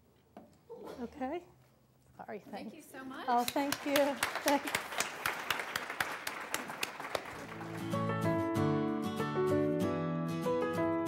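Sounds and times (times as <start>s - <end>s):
audience applauding: 3.5s - 8.3s.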